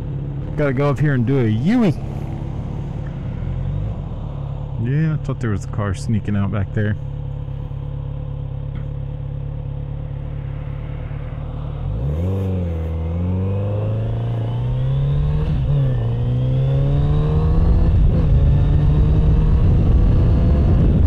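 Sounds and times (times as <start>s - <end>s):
motorcycle engine accelerating: 0.0s - 5.8s, 6.5s - 21.0s.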